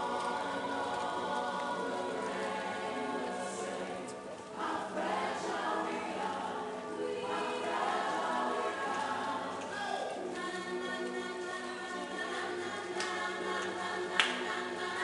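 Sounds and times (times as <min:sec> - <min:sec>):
choir singing in harmony: 0:00.0 - 0:15.0.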